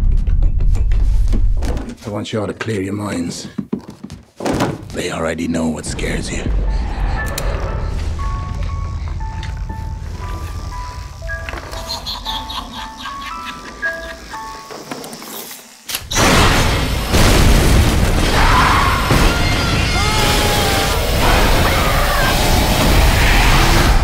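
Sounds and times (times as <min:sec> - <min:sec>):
low drone: 0:05.8 - 0:15.5.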